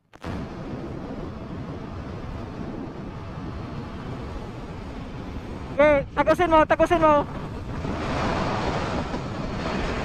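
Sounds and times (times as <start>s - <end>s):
wind rushing over microphone: 0.2s - 10.0s.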